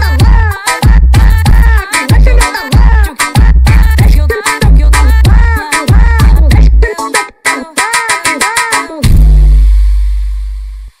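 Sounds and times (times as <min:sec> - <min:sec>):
deep electronic bass note: 0:09.0 - 0:11.0.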